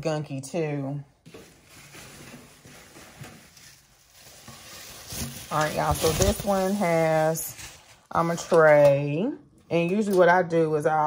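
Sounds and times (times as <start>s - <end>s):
packaging wrap crinkling: 1.3s - 8.1s.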